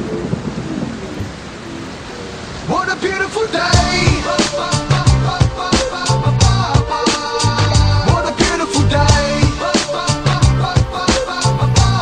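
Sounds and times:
thunder rumble: 0:00.0 - 0:03.2
rain hissing: 0:00.0 - 0:12.0.

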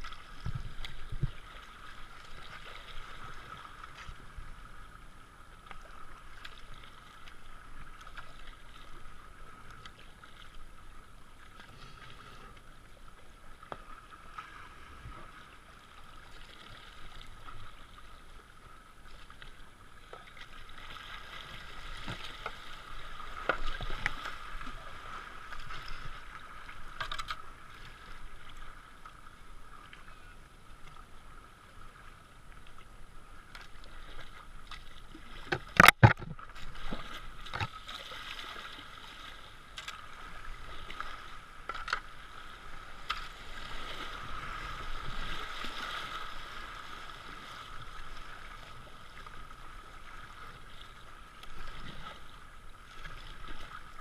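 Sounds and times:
paddle splashes: 0:00.0 - 0:54.0
rushing water: 0:00.0 - 0:54.0.

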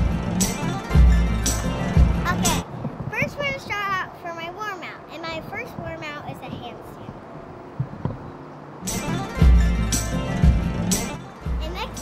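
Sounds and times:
music: 0:00.0 - 0:02.6, 0:08.8 - 0:12.0
young girl's voice: 0:02.2 - 0:07.2, 0:11.5 - 0:12.0
short soft thumps: 0:06.5 - 0:08.3.

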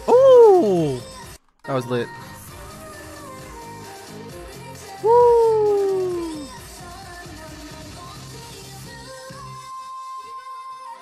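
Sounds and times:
man's drawn-out ooh: 0:00.0 - 0:01.1, 0:05.0 - 0:06.5
pop music: 0:00.0 - 0:11.0.

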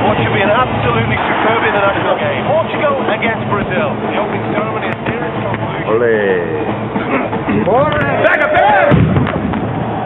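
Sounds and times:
men shouting in a tunnel: 0:08.2 - 0:09.0
heavy thud: 0:08.9 - 0:09.9.

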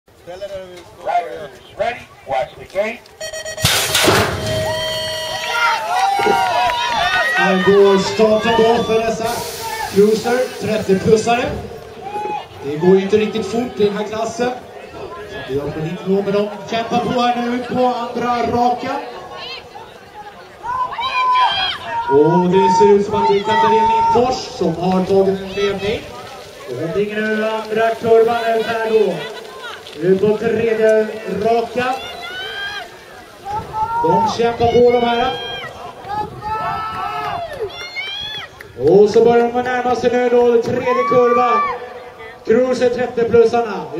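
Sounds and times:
start gate slamming down: 0:03.2 - 0:05.9
people shouting and cheering: 0:03.2 - 0:39.6, 0:40.3 - 0:42.4.

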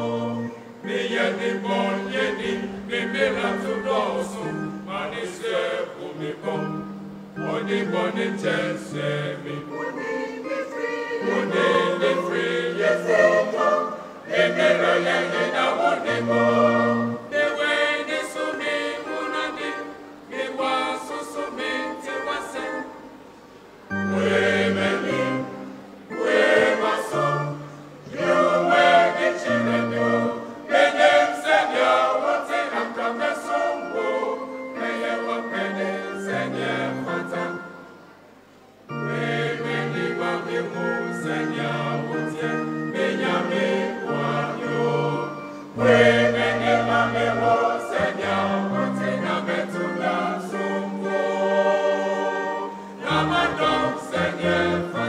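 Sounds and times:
mixed choir singing: 0:00.0 - 0:23.2, 0:23.9 - 0:38.0, 0:38.9 - 0:55.0.

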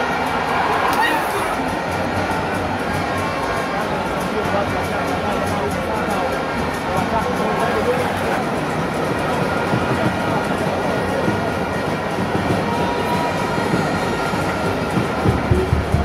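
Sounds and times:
stadium crowd roar: 0:00.0 - 0:16.0.

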